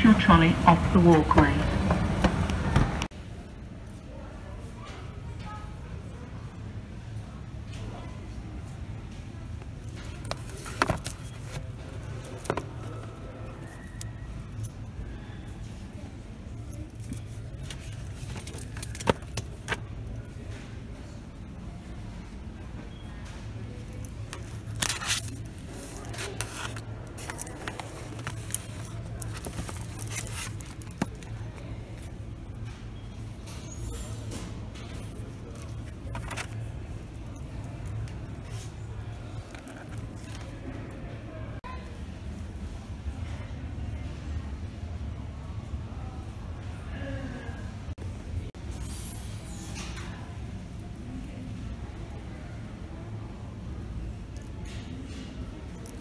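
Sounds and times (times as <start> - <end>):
moving walkway humming: 0.0 - 3.1
shop background noise: 0.0 - 56.0.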